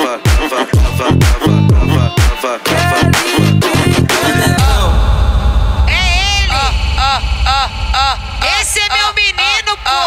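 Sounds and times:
heavy bass: 0.8 - 10.0
pitch-shifting vocal sample: 2.7 - 10.0.

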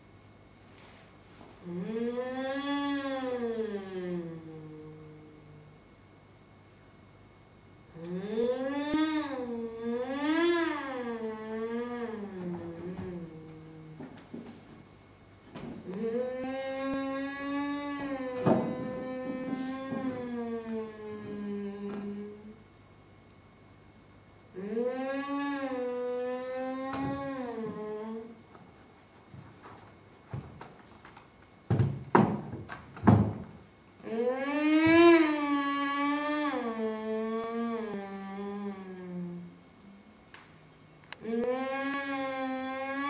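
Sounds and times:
person singing long wordless note: 1.6 - 5.8, 34.0 - 39.9.

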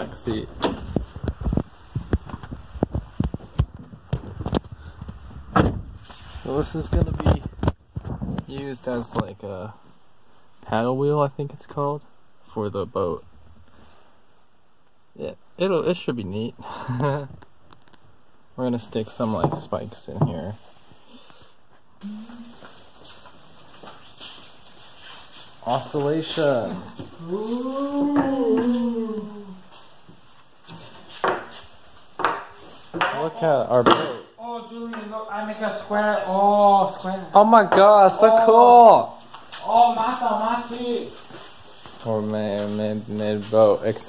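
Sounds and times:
loud thump: 5.5 - 6.0
footsteps on concrete: 22.6 - 26.2.

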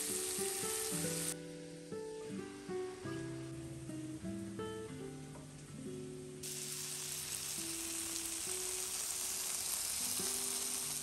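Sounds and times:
shrimp sizzling in a pan: 0.0 - 1.8, 6.4 - 11.0
acoustic guitar music: 0.0 - 9.4, 10.0 - 11.0.

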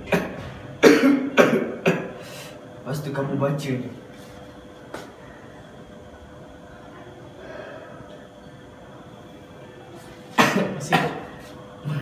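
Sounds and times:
man coughing: 0.0 - 2.2, 10.4 - 11.4.

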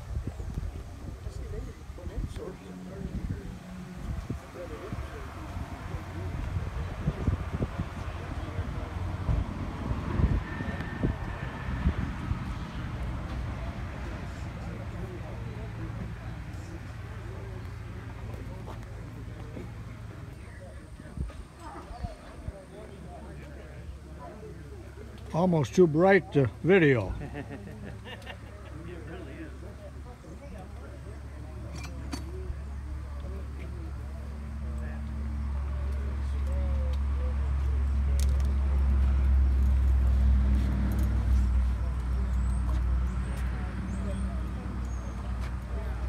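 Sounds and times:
people talking: 0.0 - 12.1, 12.7 - 39.8, 40.9 - 46.0
wind buffeting microphone: 0.0 - 13.7
low outdoor rumble: 0.0 - 46.0.

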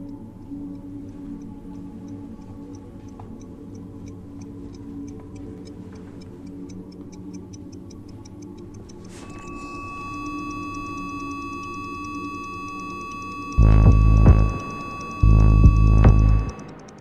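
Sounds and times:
clock-like ticking: 0.0 - 17.0
high electronic tone: 9.2 - 17.0
low sustained drone: 9.2 - 17.0.

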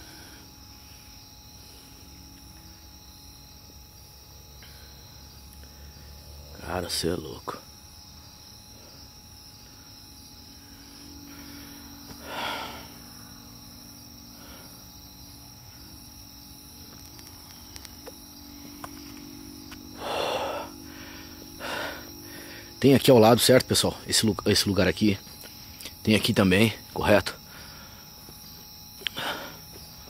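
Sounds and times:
crickets chirring: 0.0 - 30.0.

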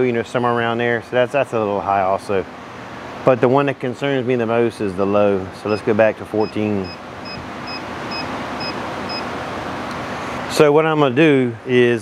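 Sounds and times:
car warning chime beeping: 5.7 - 9.3.

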